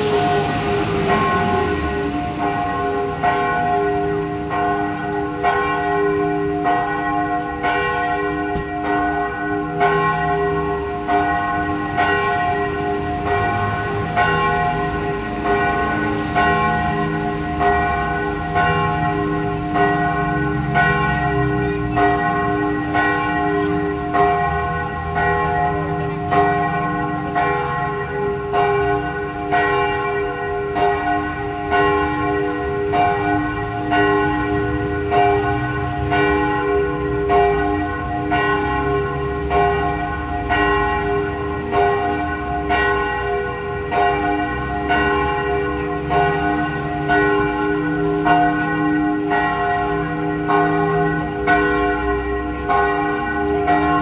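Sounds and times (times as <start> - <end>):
church bells ringing: 0.0 - 54.0.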